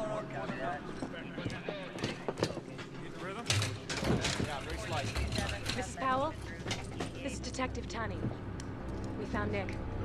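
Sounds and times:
clatter of gear: 3.4s - 7.2s.

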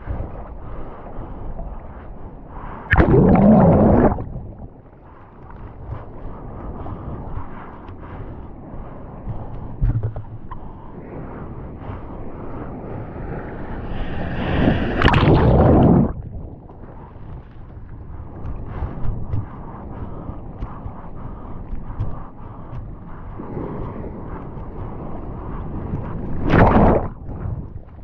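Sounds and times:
seawater sloshing and splashing: 2.6s - 6.1s, 14.0s - 22.7s, 24.8s - 28.0s
breaking wave rushing: 2.9s - 4.7s, 14.0s - 16.2s.

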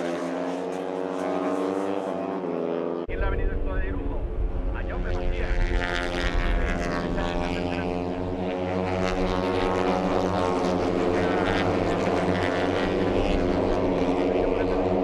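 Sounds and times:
racing motorcycles passing at high revs: 0.0s - 3.2s, 4.1s - 15.0s.

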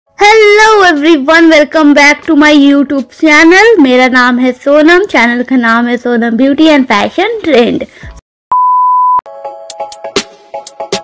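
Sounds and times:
loud electronic beep: 8.5s - 9.2s.

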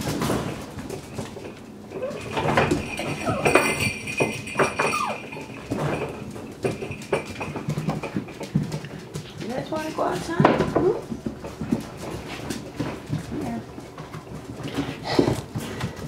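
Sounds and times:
claws clicking on tile floor: 0.1s - 16.0s
puppies whimpering and yipping: 1.9s - 5.8s.

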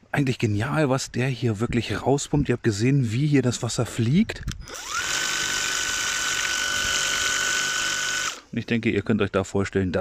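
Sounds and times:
pump motor high whine: 4.6s - 8.5s.

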